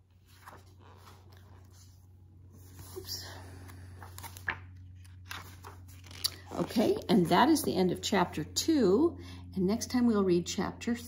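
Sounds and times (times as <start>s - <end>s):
book pages rustling: 0.0s - 8.0s
low steady hum: 0.0s - 11.0s.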